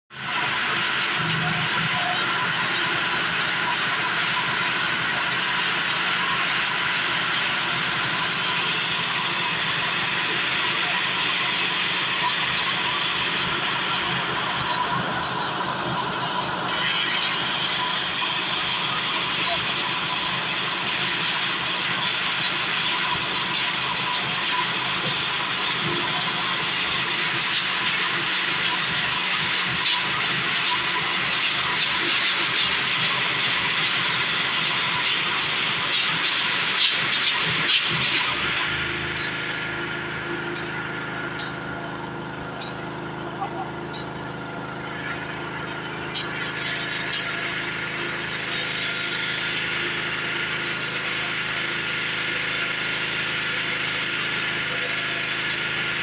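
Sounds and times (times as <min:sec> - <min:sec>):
small petrol engine running: 0:00.1 - 0:56.0.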